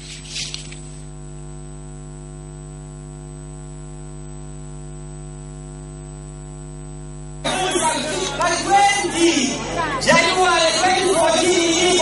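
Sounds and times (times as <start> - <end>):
electrical mains hum: 0.0 - 12.0
faint high whine: 0.0 - 12.0.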